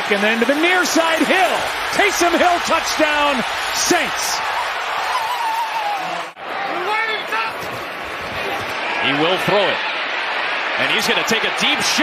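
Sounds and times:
stadium crowd noise: 0:00.0 - 0:12.0
long drawn-out shout: 0:03.1 - 0:06.8.

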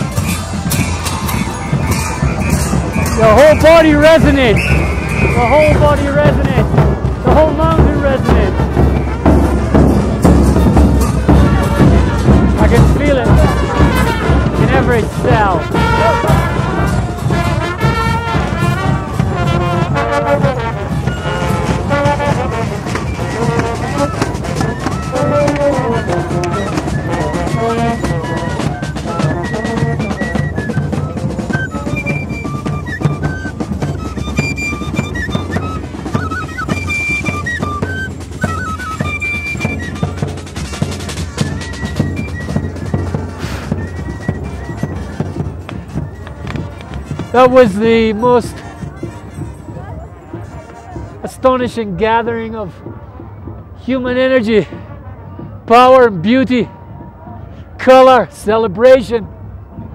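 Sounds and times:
saxophone and brass band melody: 0:00.0 - 0:51.2
steady drumming: 0:00.0 - 0:54.8.

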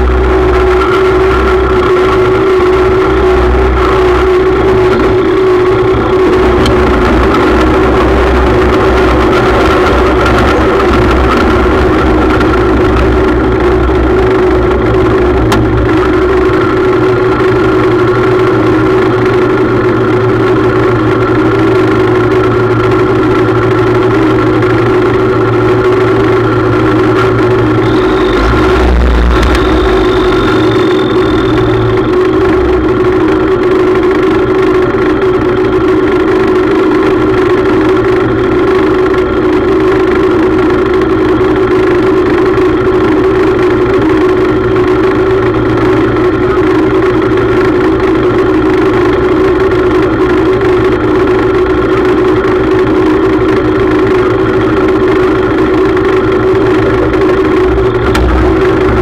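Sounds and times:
tractor engine idling: 0:00.0 - 0:59.0.

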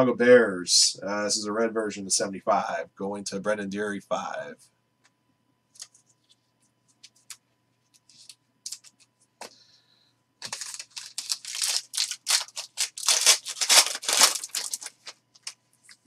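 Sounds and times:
foil wrapper crinkling and tearing: 0:08.1 - 0:09.0, 0:10.4 - 0:16.0.

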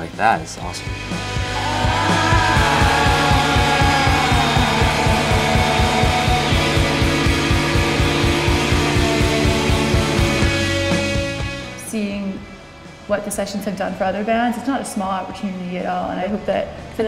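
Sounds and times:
rock music with guitars: 0:00.8 - 0:11.8.

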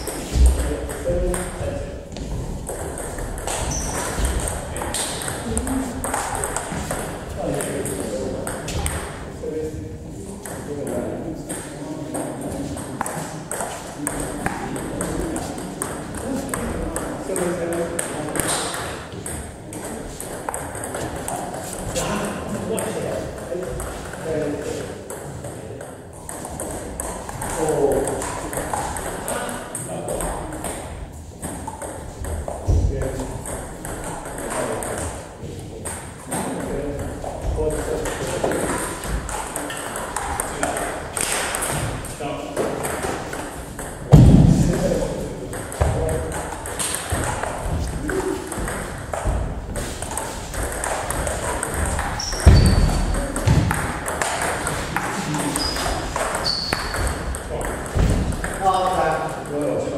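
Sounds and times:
loud thumps: 0:44.1 - 0:44.8, 0:51.8 - 0:54.4, 0:57.8 - 0:58.6.

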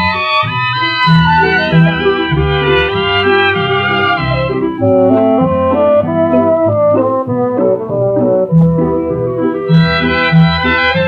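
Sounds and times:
small orchestra playing old record: 0:00.0 - 0:11.0.

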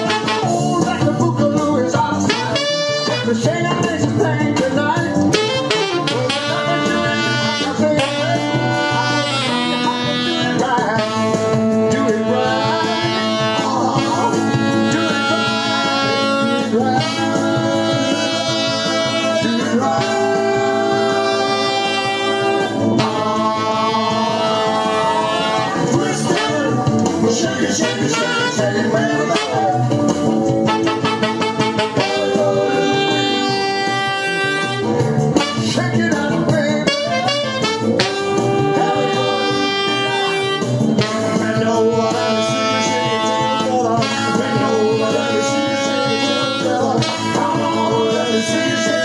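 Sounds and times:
alto saxophone riffs: 0:00.0 - 0:01.0, 0:02.2 - 0:03.6, 0:05.3 - 0:27.0, 0:27.6 - 0:36.0, 0:36.8 - 0:49.0
man singing: 0:00.0 - 0:49.0
soul band track: 0:00.0 - 0:49.0.

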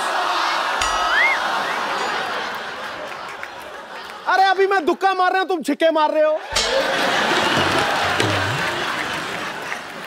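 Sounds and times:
audience applause: 0:01.0 - 0:04.6, 0:06.5 - 0:10.0.

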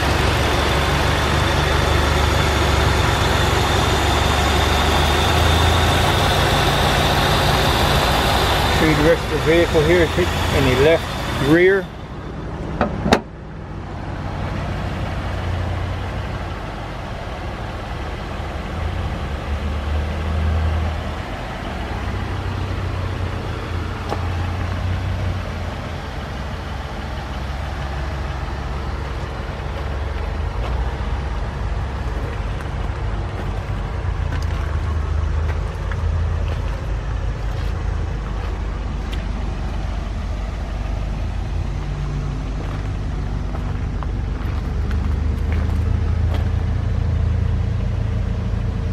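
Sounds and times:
car engine idling: 0:00.0 - 0:48.9
car hood slamming shut: 0:12.8 - 0:13.3.

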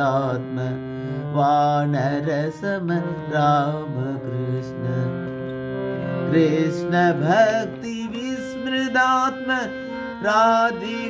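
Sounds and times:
devotional chant melody: 0:00.0 - 0:11.0.

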